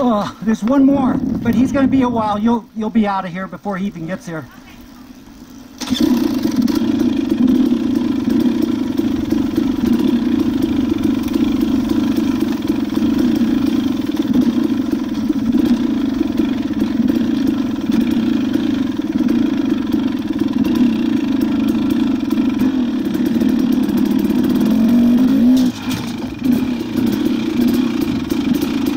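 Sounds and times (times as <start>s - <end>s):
dirt bike engine: 0.0s - 28.9s.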